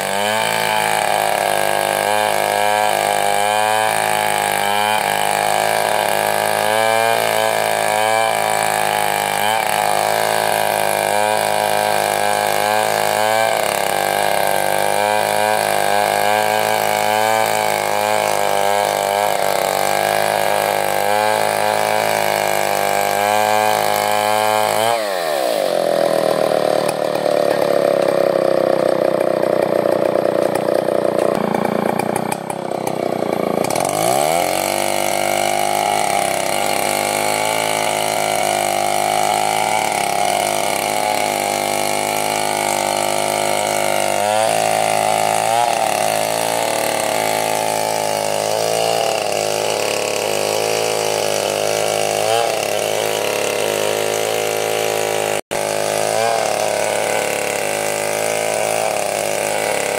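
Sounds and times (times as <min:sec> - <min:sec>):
chainsaw cutting log: 0:00.0 - 0:59.9.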